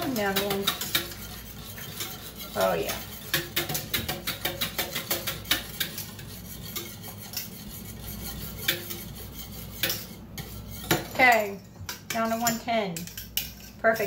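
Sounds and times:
metal utensil clinking in pot: 0.0s - 7.6s, 8.5s - 14.0s.

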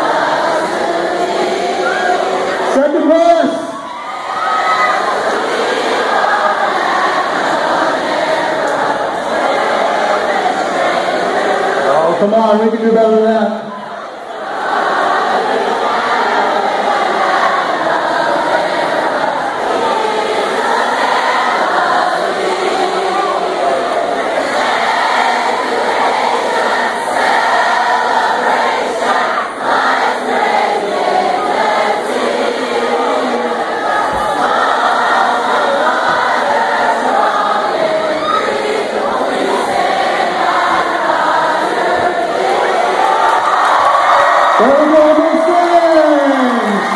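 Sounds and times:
crowd of students singing: 0.0s - 46.9s.

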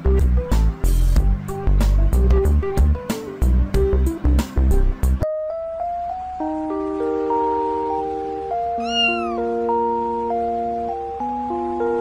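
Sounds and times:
cat meowing: 8.8s - 9.5s.

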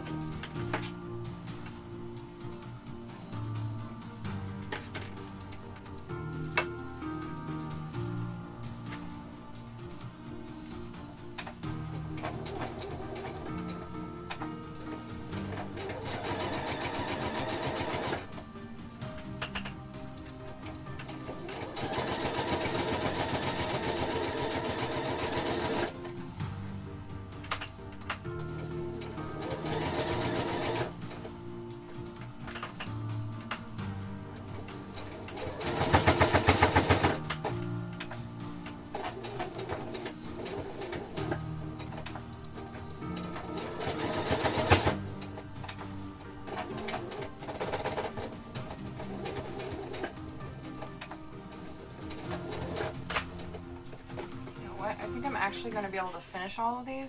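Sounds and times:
electric sewing machine stitching: 15.4s - 18.4s, 21.4s - 26.0s, 29.0s - 31.0s, 35.0s - 37.4s, 43.2s - 45.1s.

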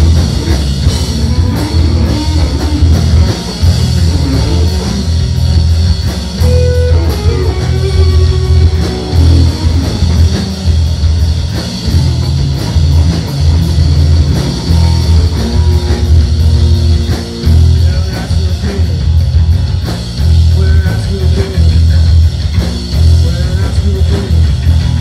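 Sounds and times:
bass guitar: 0.0s - 25.0s
drum kit: 0.0s - 25.0s
electric guitar: 0.0s - 25.0s.

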